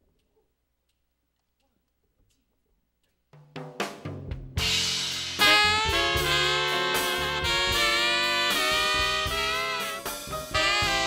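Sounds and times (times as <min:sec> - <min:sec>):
drum hits: 0:03.4 - 0:11.0
bass: 0:04.0 - 0:11.0
jazz band with saxophone and trumpet: 0:04.3 - 0:11.0.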